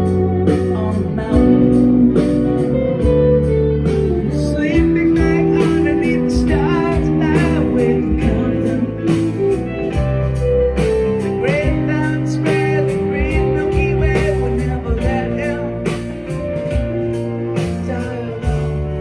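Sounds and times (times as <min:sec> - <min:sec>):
pitch-bending lead guitar line: 0:00.0 - 0:19.0
rock band playing live: 0:00.0 - 0:19.0.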